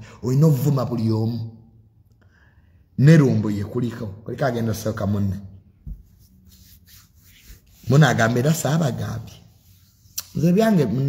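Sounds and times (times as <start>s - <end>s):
faint rubbing and rustling: 5.8s - 10.6s
man talking: 7.9s - 9.4s.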